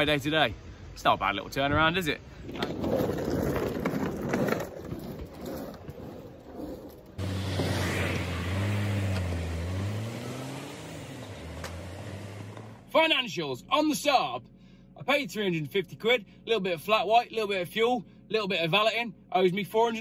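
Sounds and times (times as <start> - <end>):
street noise: 0.0 - 13.0
car engine running: 7.2 - 13.0.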